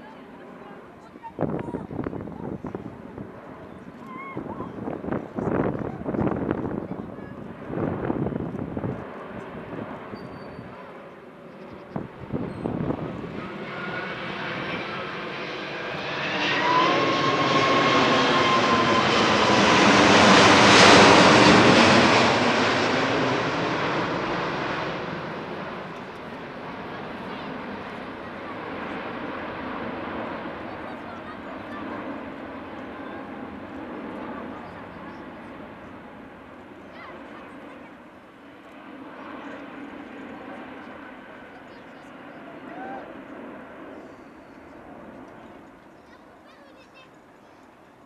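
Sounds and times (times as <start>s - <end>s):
jet airliner flying overhead: 0.0s - 48.0s.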